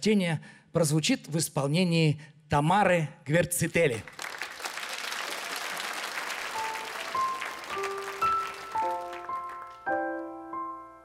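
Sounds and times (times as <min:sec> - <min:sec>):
audience applauding: 0:04.0 - 0:10.0
slow piano introduction: 0:06.3 - 0:11.0.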